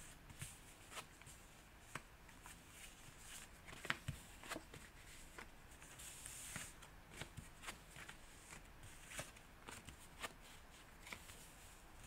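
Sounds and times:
cards sliding across cloth: 0:00.3 - 0:11.8.

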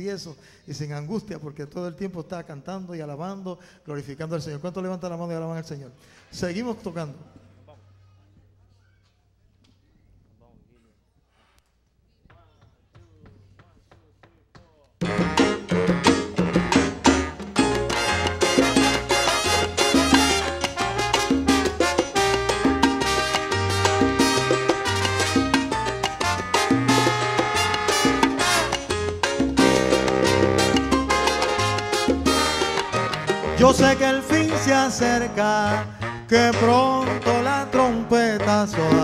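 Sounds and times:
keyboard: 0:15.0 - 0:39.0
salsa band playing: 0:15.0 - 0:39.0
trombones: 0:15.0 - 0:39.0.

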